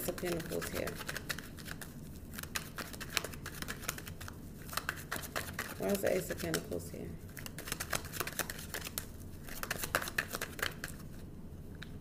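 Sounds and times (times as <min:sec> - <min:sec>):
cards being shuffled: 0:00.0 - 0:11.2.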